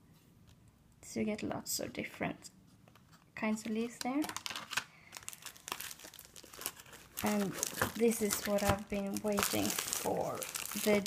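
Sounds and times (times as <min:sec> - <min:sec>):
packaging crinkling: 0:03.0 - 0:11.0.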